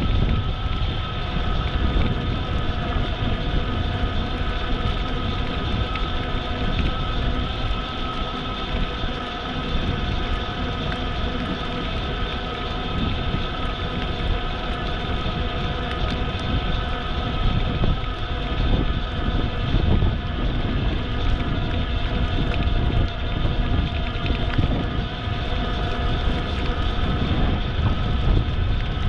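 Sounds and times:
bicycle tyre and riding noise: 0.0s - 29.0s
faint steady whine: 0.0s - 29.0s
wind rushing over microphone: 0.0s - 29.0s.

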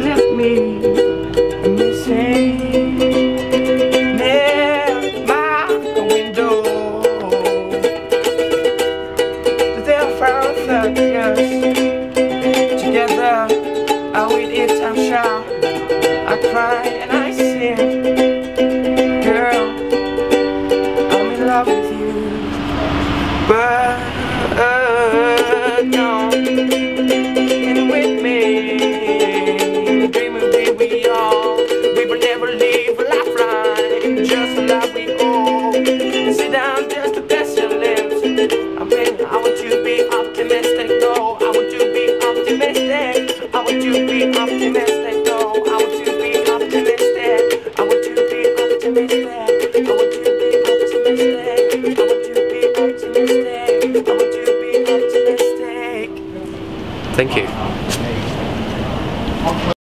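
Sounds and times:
wordless sung melody: 0.0s - 57.5s
ukulele chords: 0.0s - 58.2s.

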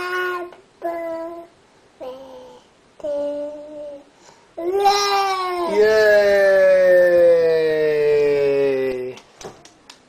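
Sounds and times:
voices holding long note: 5.7s - 9.2s.

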